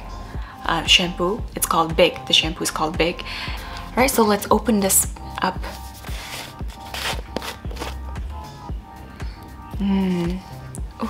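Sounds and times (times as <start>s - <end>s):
background music with beat: 0.0s - 11.0s
plastic screw lid scraping: 6.1s - 8.0s.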